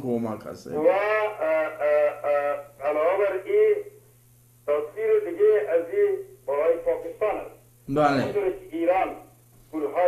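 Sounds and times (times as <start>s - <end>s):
man speaking: 0.0s - 4.0s, 4.7s - 10.0s
faint low hum: 0.0s - 10.0s.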